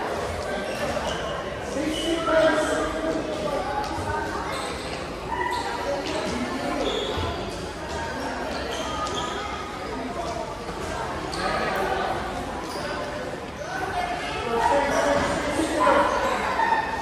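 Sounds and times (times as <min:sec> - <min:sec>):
children shouting and chattering: 0:00.0 - 0:17.0.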